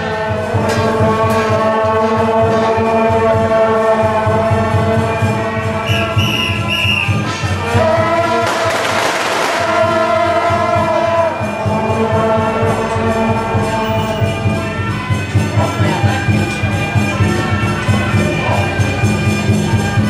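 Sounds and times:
brass band playing: 0:02.9 - 0:19.7
high whistle blasts: 0:05.8 - 0:07.3
drum beat: 0:08.4 - 0:10.8.

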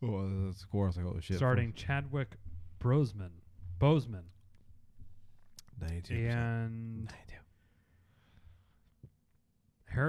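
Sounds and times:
whispered speech: 0:05.8 - 0:07.5.

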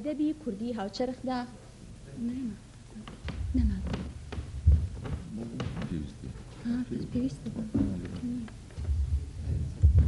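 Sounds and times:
low hum: 0:02.9 - 0:10.0
handheld microphone handling thumps: 0:03.0 - 0:06.6, 0:07.7 - 0:10.0.

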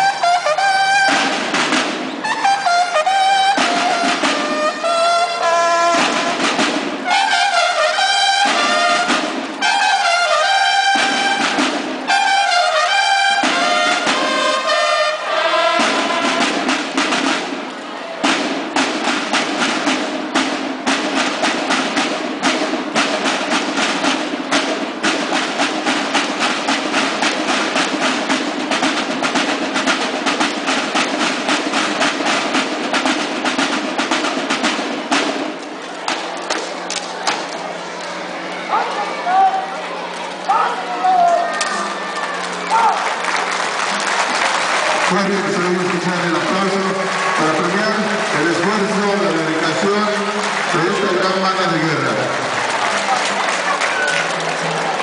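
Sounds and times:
snare drums march cadence: 0:00.0 - 0:37.9, 0:41.5 - 0:55.0
bugles playing fanfare: 0:00.0 - 0:55.0.

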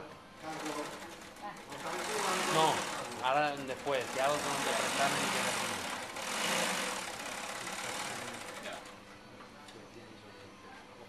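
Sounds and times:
faint background voices: 0:00.0 - 0:11.0
steady machine noise: 0:00.5 - 0:09.0.

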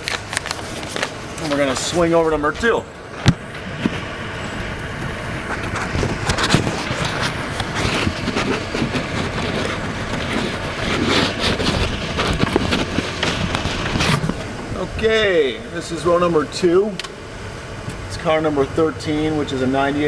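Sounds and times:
footsteps on pavement: 0:00.0 - 0:14.5
camera handling noise: 0:05.4 - 0:14.5.

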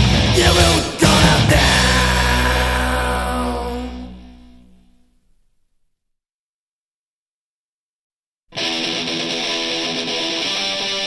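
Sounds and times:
distorted guitar and bass chord: 0:00.0 - 0:05.1.

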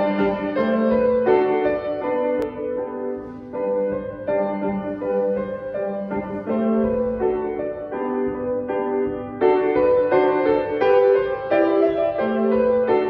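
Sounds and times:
slow grand piano piece: 0:00.0 - 0:13.0.

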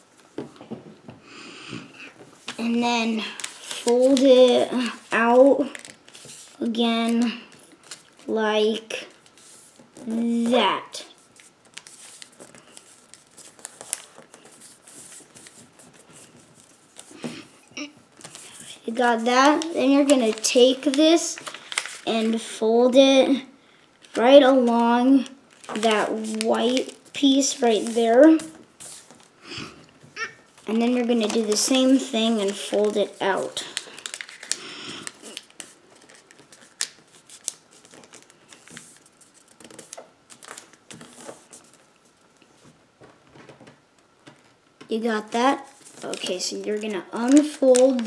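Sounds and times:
paper rustling and crinkling: 0:02.1 - 0:08.3, 0:11.1 - 0:17.5, 0:18.1 - 0:22.6, 0:23.9 - 0:29.3, 0:30.5 - 0:44.6, 0:45.4 - 0:48.0.

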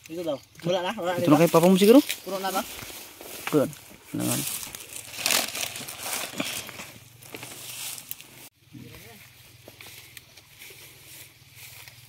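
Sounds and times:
dry leaves crackling and rustling: 0:00.0 - 0:12.0.

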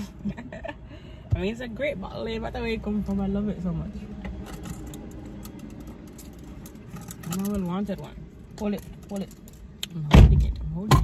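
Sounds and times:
low rumble inside car: 0:00.0 - 0:11.0.

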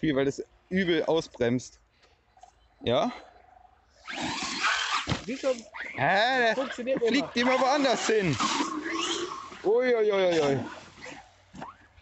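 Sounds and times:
rc truck motor rushing: 0:04.0 - 0:11.2.

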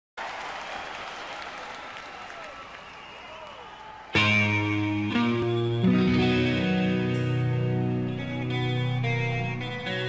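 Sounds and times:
audience applauding and cheering: 0:00.2 - 0:05.5.

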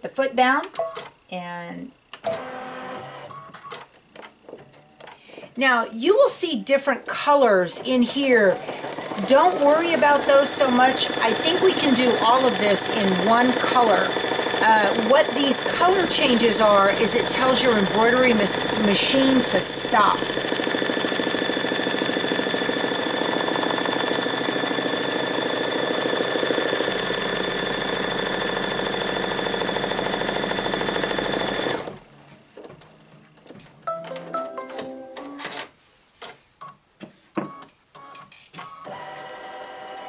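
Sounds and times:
embroidery machine running: 0:08.0 - 0:32.0.

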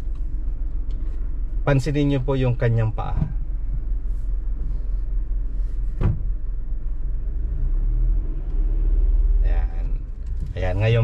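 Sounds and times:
car engine drone: 0:00.0 - 0:11.0
road rumble: 0:00.0 - 0:11.0
brief knock: 0:06.0 - 0:06.3.

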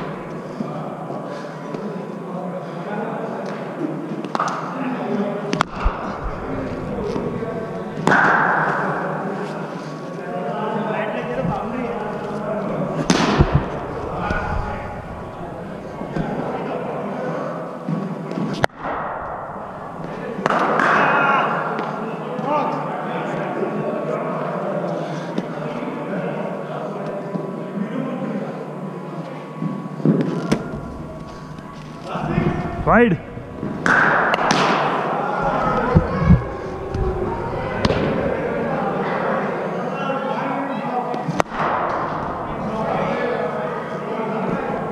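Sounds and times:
background chatter of voices: 0:00.0 - 0:44.9.

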